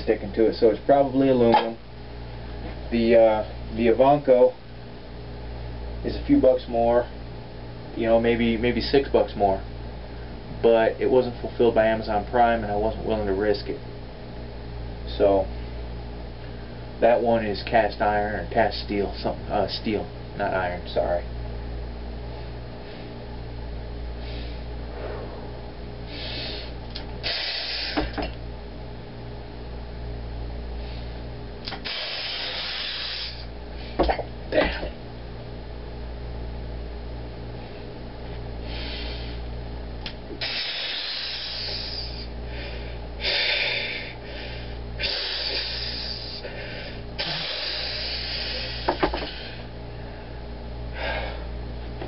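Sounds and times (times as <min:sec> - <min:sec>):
steady electrical hum: 0:00.0 - 0:52.0
man breathing forcefully: 0:24.1 - 0:28.2, 0:30.8 - 0:34.1, 0:38.6 - 0:39.5, 0:40.3 - 0:51.6.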